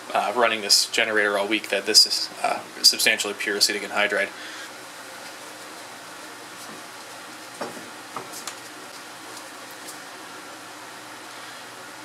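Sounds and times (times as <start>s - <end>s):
steady room hiss: 0.0s - 12.0s.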